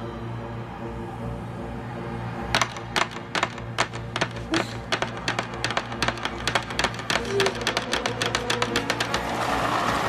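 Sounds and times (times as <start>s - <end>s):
low steady music score: 0.0s - 8.6s
sharp clacks: 2.6s - 10.0s.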